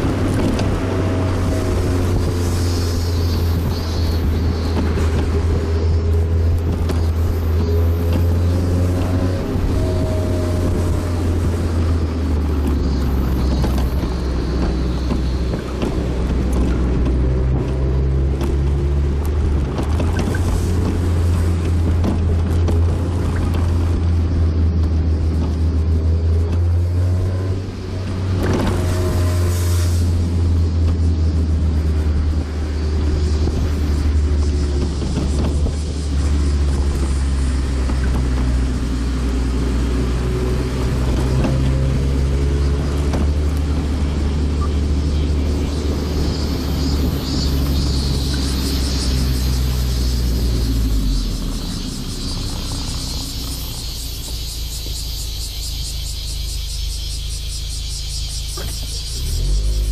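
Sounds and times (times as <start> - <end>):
car engine cruising: 0.0 - 59.9
tyre noise: 0.0 - 59.9
wind noise: 0.0 - 59.9.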